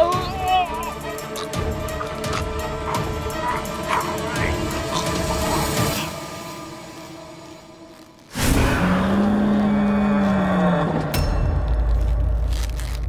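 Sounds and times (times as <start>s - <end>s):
dramatic background music: 0.0s - 13.0s.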